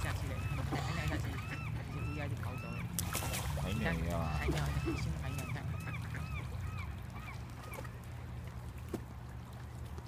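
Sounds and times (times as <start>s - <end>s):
low steady rumble: 0.0s - 10.0s
waterbird calling: 0.0s - 10.0s.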